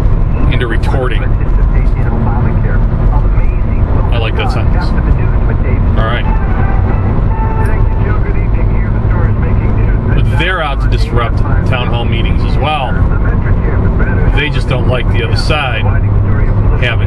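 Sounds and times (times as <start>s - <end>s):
car road and engine rumble: 0.0s - 17.0s
man talking: 0.4s - 17.0s.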